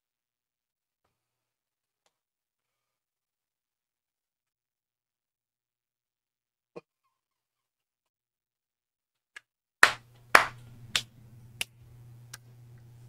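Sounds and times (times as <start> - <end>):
man clapping hands: 9.4 - 12.4.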